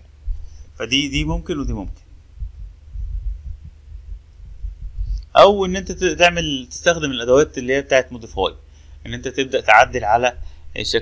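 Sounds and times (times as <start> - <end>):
low uneven rumble: 0.0 - 11.0
soft thumps: 1.7 - 5.3.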